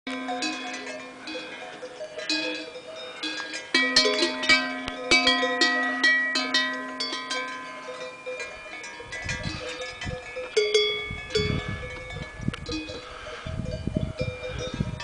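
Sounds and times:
cowbell clanking: 0.1s - 15.0s.

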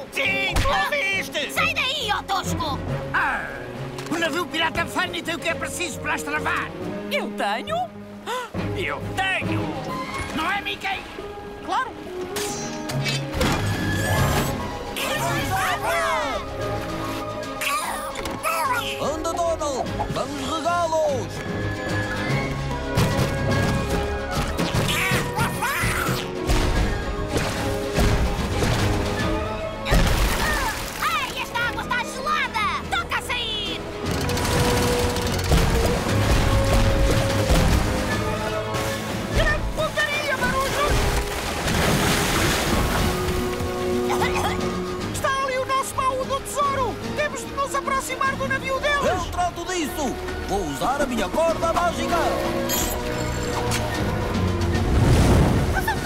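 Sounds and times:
background music: 0.0s - 56.0s
cartoon character yelping: 24.9s - 26.2s
ship's wheel ratcheting clatter: 34.0s - 35.6s.

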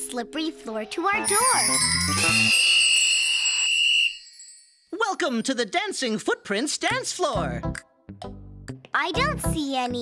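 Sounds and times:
high shimmering chime: 1.0s - 5.0s.

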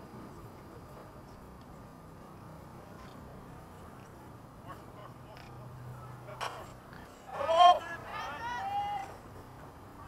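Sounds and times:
faint background noise: 0.0s - 10.0s
person shouting: 7.4s - 9.1s.

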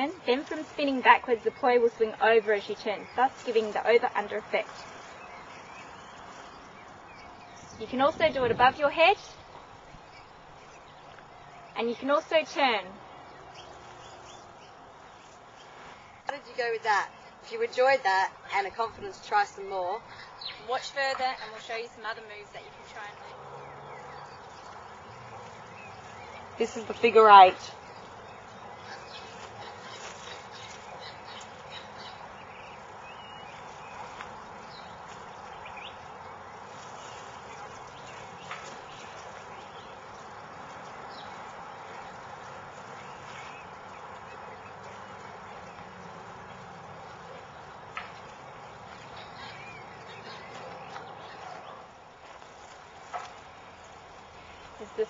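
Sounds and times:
steady outdoor hiss: 0.0s - 55.0s
faint bird calls: 22.8s - 52.1s
faint bird chirps: 48.9s - 51.9s.

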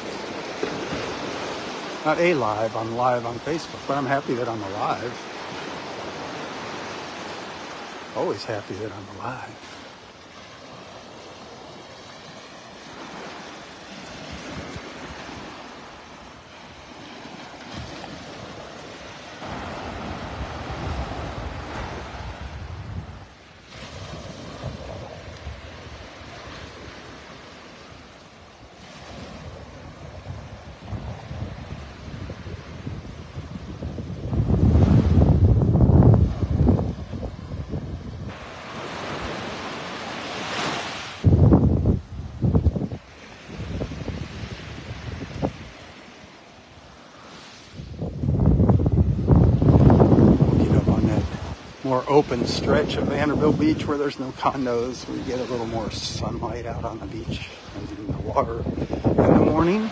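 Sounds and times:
wind rumbling on microphone: 0.0s - 9.6s, 10.5s - 59.9s
surf washing on sandy shore: 0.0s - 59.9s.

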